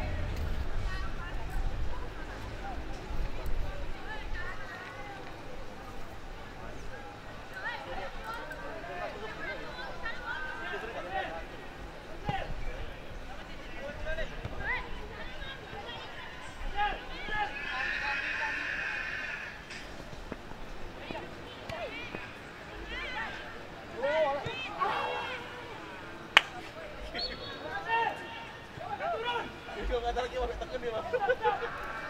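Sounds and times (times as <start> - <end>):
distant shouts and calls: 14.3 - 19.8, 21.2 - 26.4, 31.1 - 32.0.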